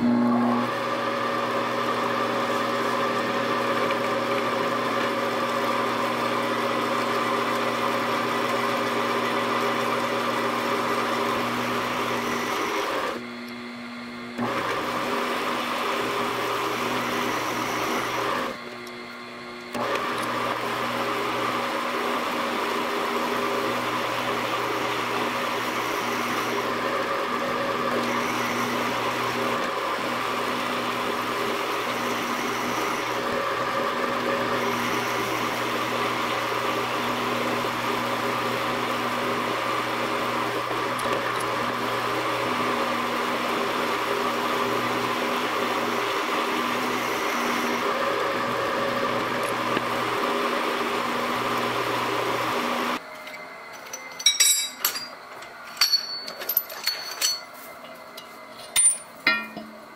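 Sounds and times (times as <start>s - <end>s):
milling machine motor hum: 0.0s - 54.0s.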